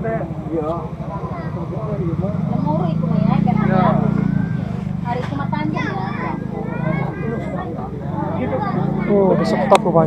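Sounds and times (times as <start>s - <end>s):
people talking: 0.0s - 10.0s
small engine droning: 0.0s - 10.0s.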